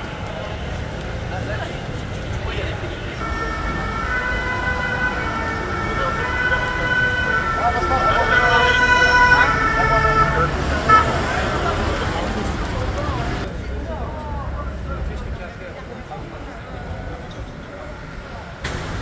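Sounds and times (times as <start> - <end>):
low street rumble: 0.0 - 19.0
police siren: 3.2 - 12.5.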